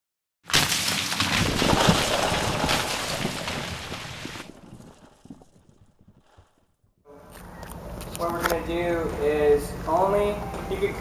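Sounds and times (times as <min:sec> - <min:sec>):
loud burst of crackling noise: 0:00.5 - 0:06.6.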